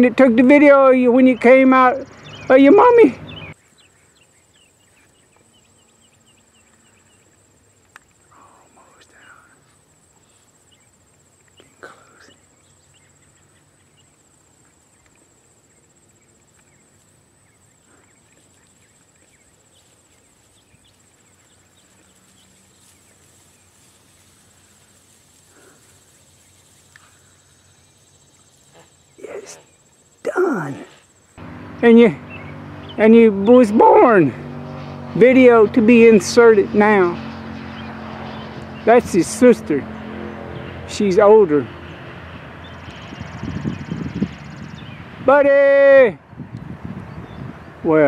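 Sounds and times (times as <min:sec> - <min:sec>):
high-pitched insect trill: 0:00.0 - 0:38.4
faint chirps: 0:01.3 - 0:31.4.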